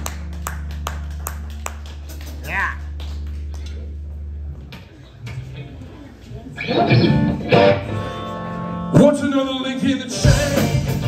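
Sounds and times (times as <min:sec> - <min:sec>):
amplifier hum: 0:00.0 - 0:08.9.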